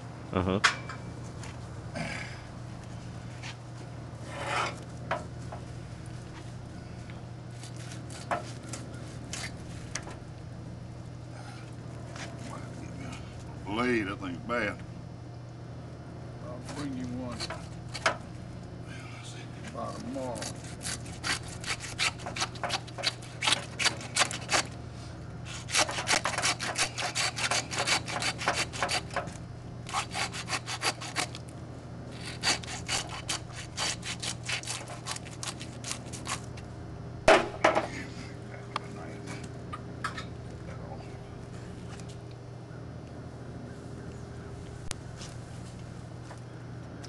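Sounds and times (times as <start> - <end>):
hand saw cutting: 20.4 - 24.7, 25.5 - 29.2, 29.9 - 31.4, 32.1 - 36.4.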